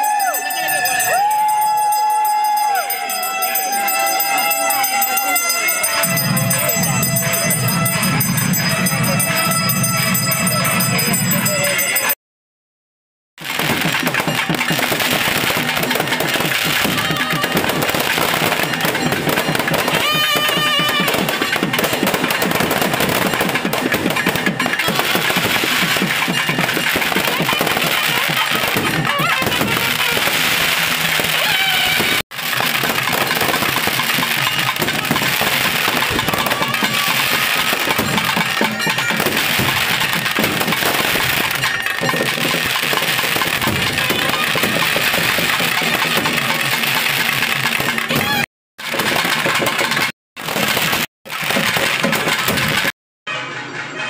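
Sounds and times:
fireworks crackling and popping: 13.4 - 52.9.

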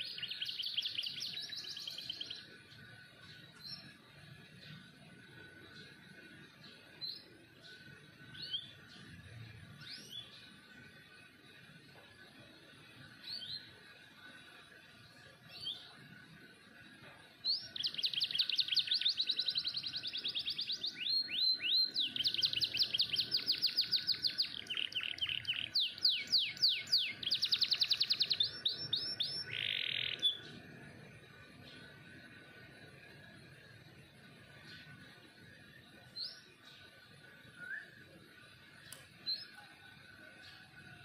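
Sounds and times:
canary song with fast trills: 0.0 - 41.0.

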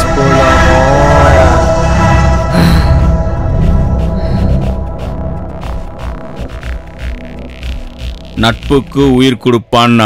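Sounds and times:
throbbing low drone music: 0.0 - 10.0.

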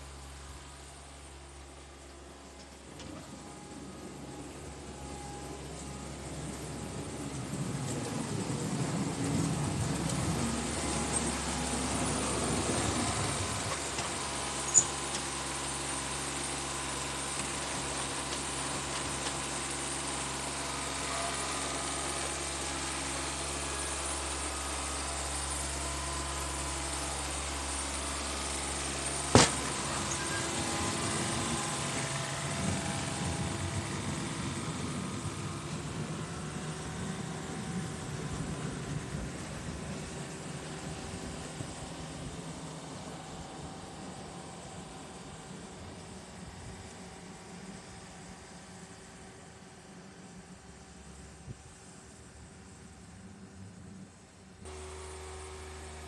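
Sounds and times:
diesel mower engine: 0.0 - 56.0.

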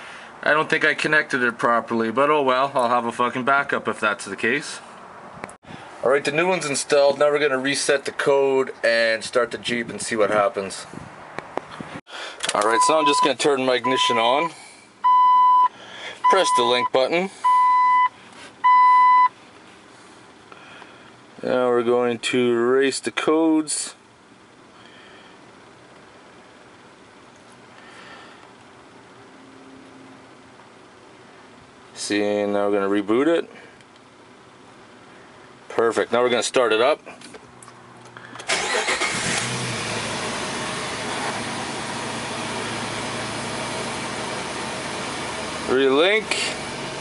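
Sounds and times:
car engine starting and idling: 12.2 - 19.3, 37.8 - 47.0
scan tool beeping: 12.7 - 14.4.

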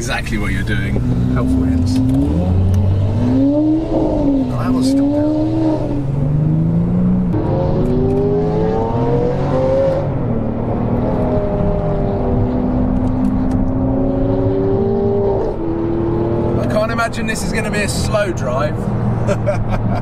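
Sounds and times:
car engine accelerating: 0.0 - 20.0.

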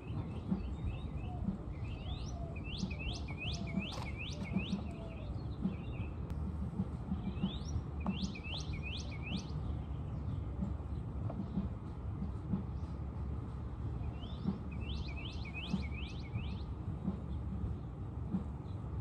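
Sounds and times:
songbird whistling: 0.0 - 6.2, 7.2 - 9.9, 14.0 - 16.8
low outdoor rumble: 0.0 - 19.0.

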